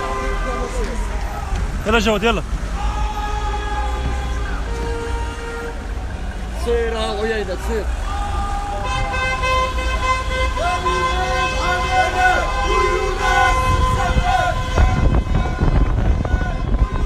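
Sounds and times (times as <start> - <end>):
car horns blasting: 0.0 - 1.0, 3.1 - 6.2, 8.6 - 17.0
traffic rumble: 0.0 - 17.0
people shouting: 2.7 - 5.6, 7.8 - 17.0
wind on microphone: 13.4 - 17.0.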